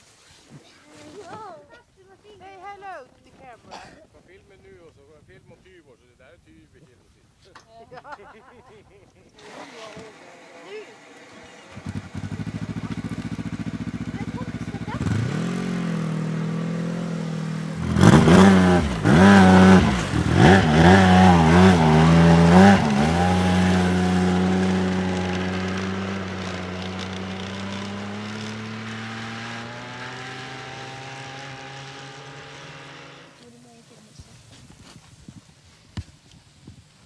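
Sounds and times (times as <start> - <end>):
snowmobile engine revving: 9.3 - 34.5.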